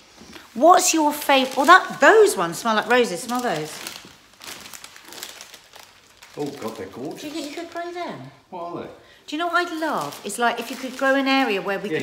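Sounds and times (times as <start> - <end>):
plastic wrapping crinkling: 0.1 - 8.4, 9.4 - 12.0.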